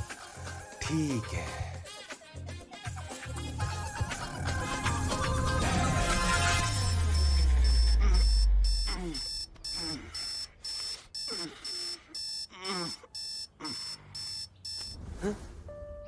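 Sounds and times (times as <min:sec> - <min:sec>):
deep rumble: 0:04.4 - 0:09.7
electronic alarm beeping: 0:05.4 - 0:15.0
man groaning and grumbling: 0:08.0 - 0:10.2, 0:12.5 - 0:13.8.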